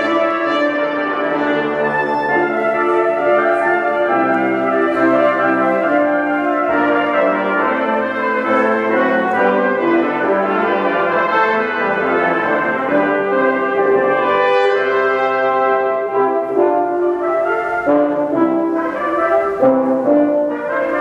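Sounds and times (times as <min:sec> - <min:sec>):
brass quintet playing chords: 0:00.0 - 0:21.0.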